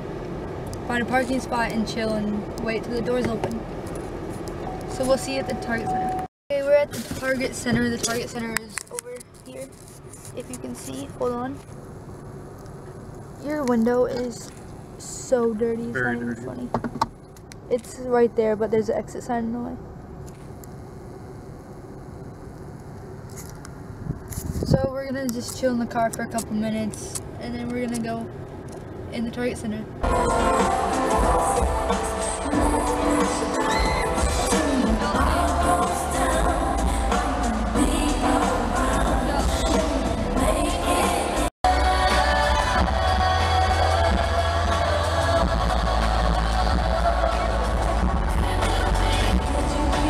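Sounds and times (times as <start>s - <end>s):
car engine rumble inside cabin: 0.0s - 50.0s
woman singing: 30.0s - 50.0s.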